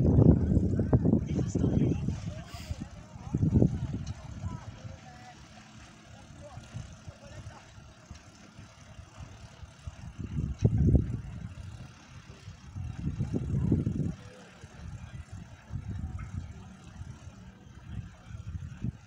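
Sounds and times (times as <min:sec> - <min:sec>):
wind buffeting microphone: 0:00.0 - 0:05.5, 0:06.4 - 0:19.0.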